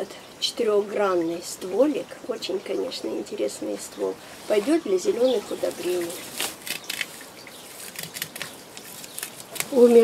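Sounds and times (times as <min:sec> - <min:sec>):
flower stalks crackling and rustling: 0:03.2 - 0:10.0.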